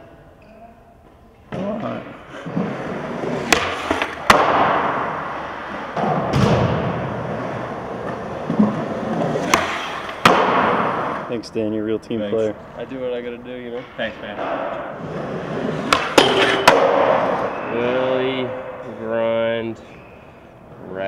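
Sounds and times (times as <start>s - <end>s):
skateboard wheels rolling on concrete: 1.6s - 11.4s, 14.5s - 17.5s.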